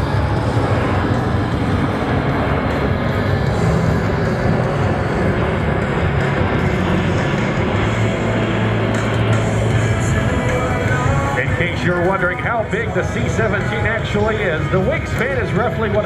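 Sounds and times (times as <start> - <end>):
background music: 0.0 - 16.0
jet engines overhead: 0.0 - 16.0.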